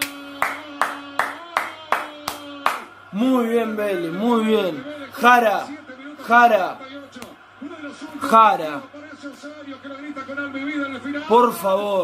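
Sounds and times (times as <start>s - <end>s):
person clapping hands: 0.0s - 2.9s.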